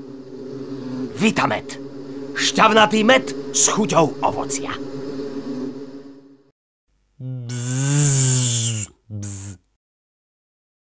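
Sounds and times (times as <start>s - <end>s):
loud buzz bending in pitch: 7.3s - 9.6s.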